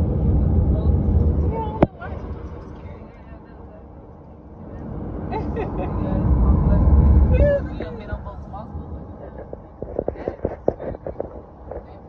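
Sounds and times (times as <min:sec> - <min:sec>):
road and wind rumble in car: 0:00.0 - 0:12.0.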